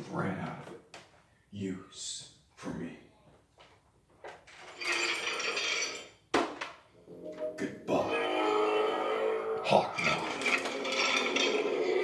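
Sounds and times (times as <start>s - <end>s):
metallic ringing jingle: 10.2s - 12.0s.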